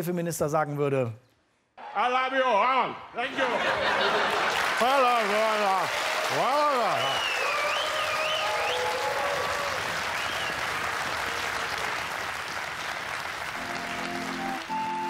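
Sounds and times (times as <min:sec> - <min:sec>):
audience applauding: 0:03.3 - 0:15.0
music playing: 0:13.4 - 0:15.0.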